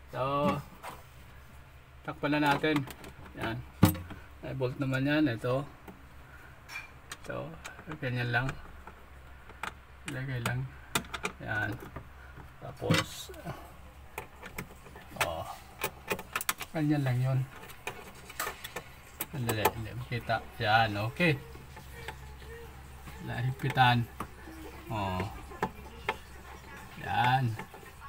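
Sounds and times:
man speaking: 7.2s - 8.6s, 11.4s - 11.9s, 12.6s - 13.7s, 15.1s - 15.7s, 16.7s - 17.5s, 19.3s - 21.5s, 23.1s - 24.2s, 24.8s - 25.5s, 26.9s - 27.6s
metal scraping on plastic: 10.4s - 28.0s.

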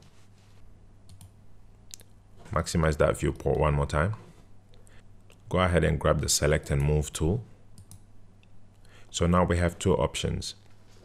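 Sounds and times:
faint electrical hum: 0.0s - 11.0s
computer mouse clicks: 1.1s - 2.0s, 7.8s - 8.0s.

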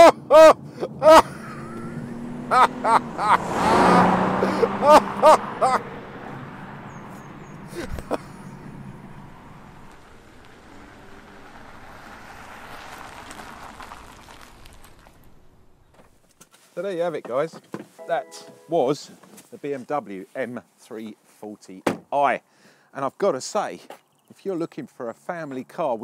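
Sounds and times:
man exclaiming: 0.0s - 6.0s
road noise: 0.0s - 26.0s
car engine driving past: 1.3s - 15.8s.

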